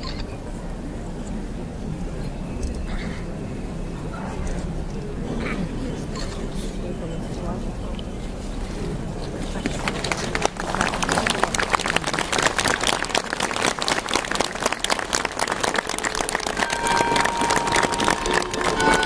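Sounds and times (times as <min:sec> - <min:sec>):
voices: 0:00.0 - 0:19.0
crowd clapping: 0:09.4 - 0:19.0.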